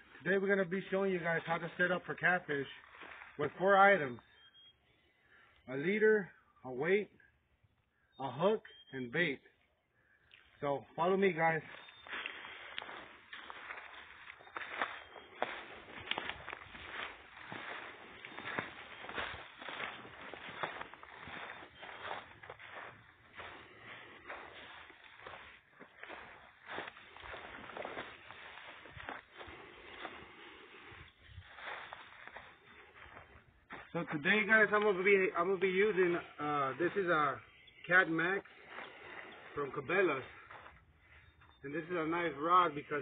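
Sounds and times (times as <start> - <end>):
footsteps on dry leaves: 0.0 - 4.0, 11.2 - 37.5, 38.4 - 42.0.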